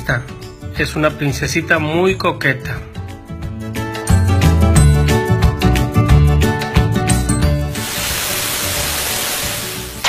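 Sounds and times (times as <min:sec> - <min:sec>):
television static hiss: 0:07.8 - 0:09.8.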